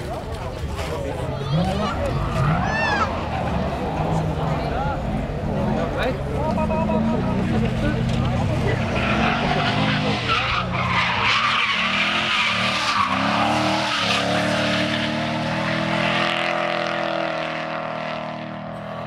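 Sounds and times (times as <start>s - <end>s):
car engine revving hard: 1.5s - 19.0s
tyres screeching: 8.0s - 16.2s.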